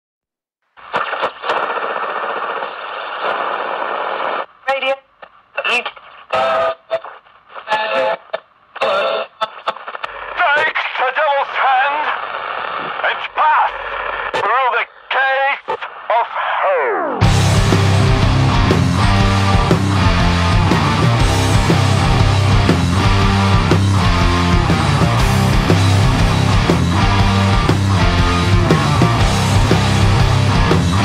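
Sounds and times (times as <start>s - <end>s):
radio static: 0.8s - 31.0s.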